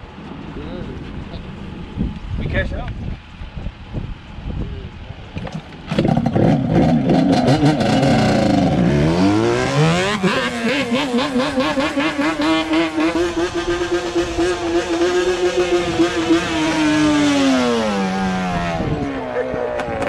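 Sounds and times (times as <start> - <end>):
two-stroke quad engine revving: 5.9 - 20.0.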